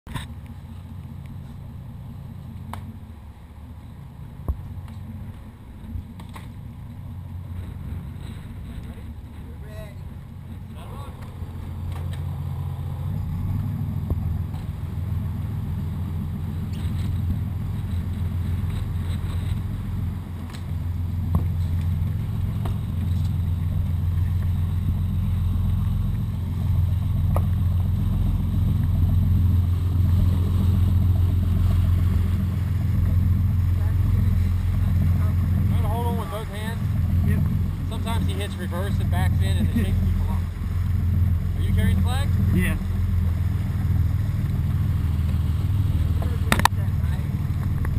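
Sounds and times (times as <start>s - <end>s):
boat engine droning: 0.1s - 47.9s.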